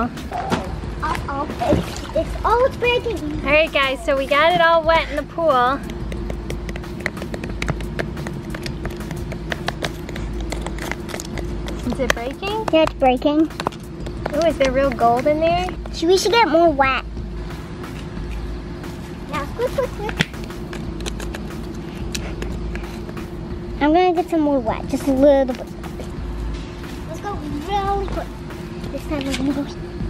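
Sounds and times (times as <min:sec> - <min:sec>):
steady background hum: 0:00.0 - 0:30.0.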